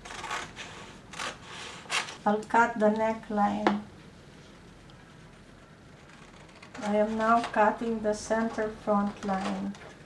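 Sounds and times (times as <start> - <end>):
scissors cutting paper: 0.0 - 2.2, 6.0 - 7.9, 9.1 - 9.8.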